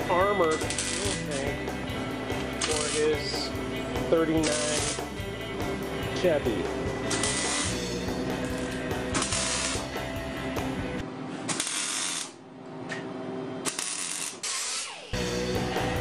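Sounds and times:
background music: 0:00.0 - 0:11.1, 0:15.1 - 0:16.0
crackling welding arc: 0:00.6 - 0:01.5, 0:02.6 - 0:03.3, 0:04.4 - 0:05.0, 0:07.1 - 0:07.8, 0:09.2 - 0:09.9, 0:11.5 - 0:12.4, 0:13.7 - 0:15.2.

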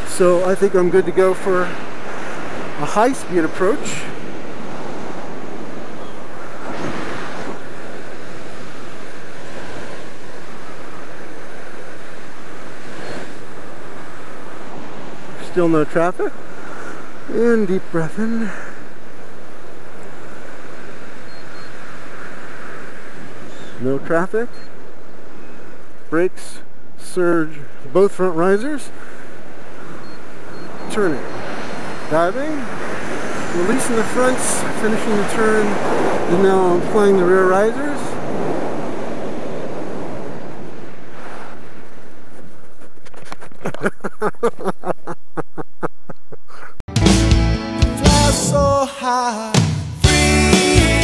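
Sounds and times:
wind rushing over microphone: 0:00.0 - 0:23.8, 0:28.9 - 0:43.8.

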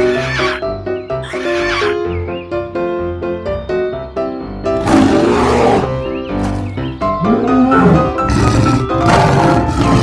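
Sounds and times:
background music with steady melody: 0:00.0 - 0:10.0
dinosaur roars: 0:04.8 - 0:06.0, 0:07.2 - 0:10.0.

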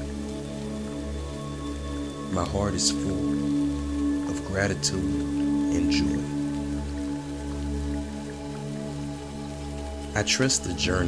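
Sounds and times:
ambient music of held tones: 0:00.0 - 0:11.0
rain hiss: 0:00.0 - 0:11.0.

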